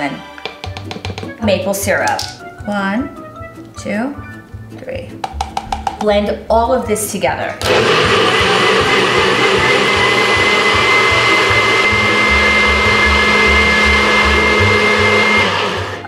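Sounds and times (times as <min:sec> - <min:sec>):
blender motor whining: 0:07.6 - 0:16.0.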